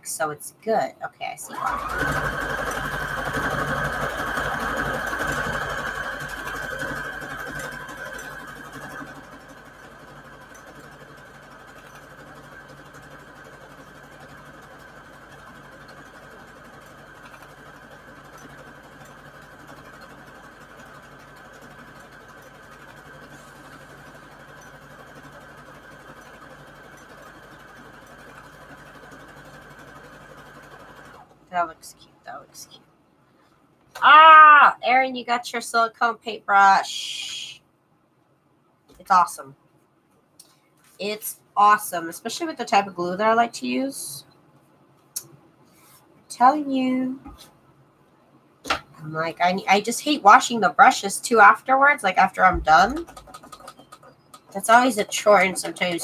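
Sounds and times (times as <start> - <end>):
electric sewing machine stitching: 1.4 - 31.8, 49.0 - 56.0.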